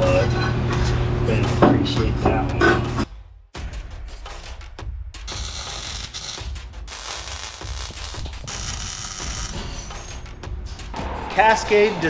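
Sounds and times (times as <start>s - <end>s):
welding arc crackling: 5.3s - 10.1s.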